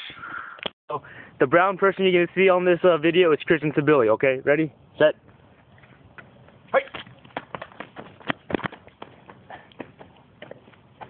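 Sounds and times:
footsteps running on asphalt: 6.1 - 11.0.

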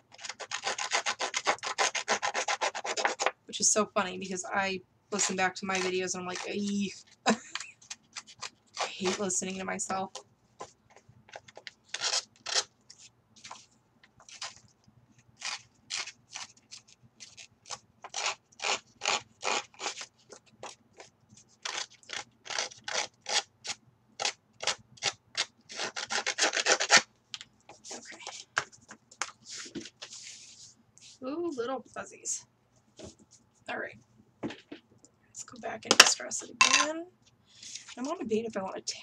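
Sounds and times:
hands rubbing paper: 27.7 - 31.6.

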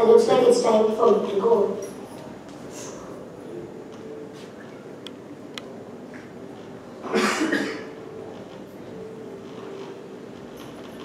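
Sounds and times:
person coughing: 7.0 - 7.9.

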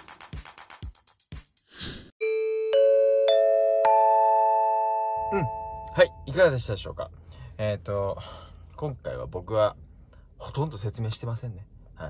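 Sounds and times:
rising bell-like chimes: 2.2 - 6.3.

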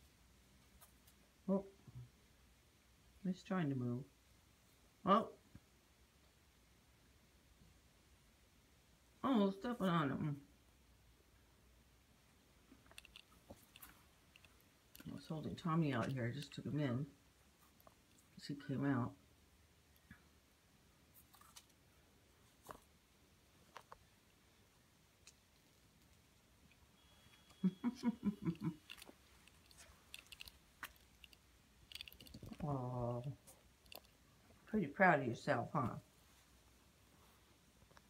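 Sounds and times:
cat chewing clicks and crunches: 12.8 - 15.2, 28.4 - 32.6, 33.4 - 34.2.

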